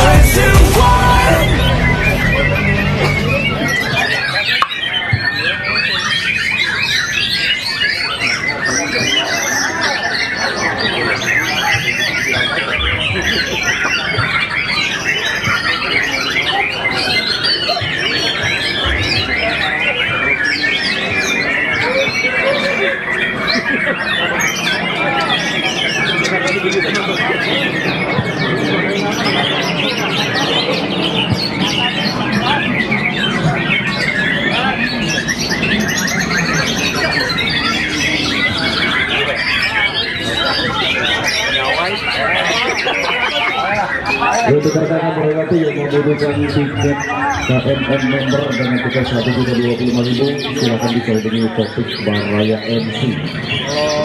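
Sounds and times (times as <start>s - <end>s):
bird trilling: 0.0s - 54.0s
chorus of songbirds singing: 0.0s - 54.0s
low crowd murmur: 0.0s - 54.0s.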